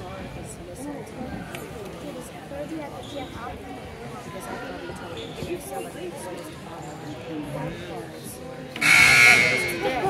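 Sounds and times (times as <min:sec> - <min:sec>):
spectators chatting: 0:00.0 - 0:10.0
scoreboard buzzer: 0:08.8 - 0:09.9.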